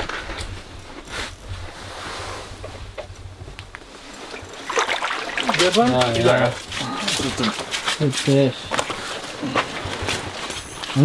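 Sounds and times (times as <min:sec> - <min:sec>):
wind rumbling on microphone: 0:00.0 - 0:04.9.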